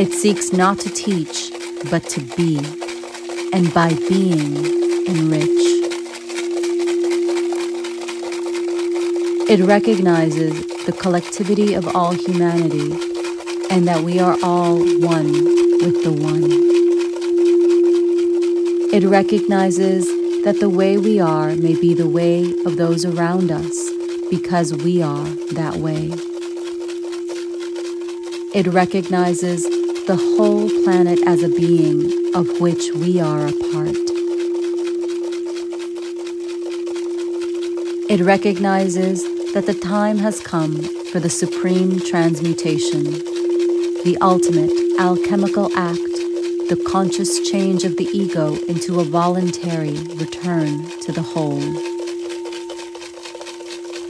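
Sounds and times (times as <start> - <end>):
singing bowl ringing: 0.0 - 54.0
weaker lower bowl tone: 0.0 - 54.0.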